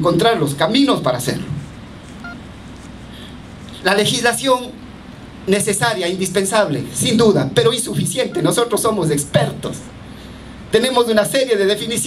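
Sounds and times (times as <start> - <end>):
room hiss: 0.0 - 12.0
faint electronic beep: 2.2 - 2.4, 8.2 - 8.7
man talking over microphone: 3.8 - 4.8, 5.5 - 9.9, 10.7 - 12.0.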